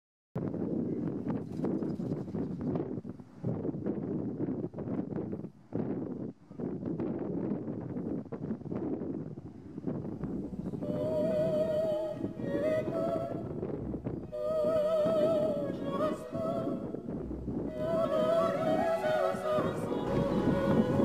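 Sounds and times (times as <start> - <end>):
wind buffeting microphone: 0.4 - 21.0.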